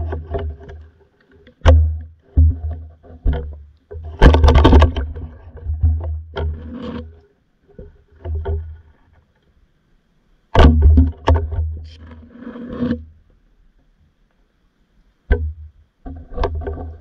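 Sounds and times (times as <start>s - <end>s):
muffled underwater bumps and clicks: 0.0s - 9.6s, 10.5s - 14.4s, 15.0s - 17.0s
rumbling water noise: 0.0s - 13.3s.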